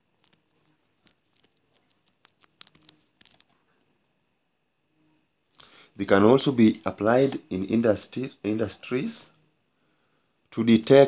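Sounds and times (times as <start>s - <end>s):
stylus clicking and scratching on tablet: 0.2s - 3.8s.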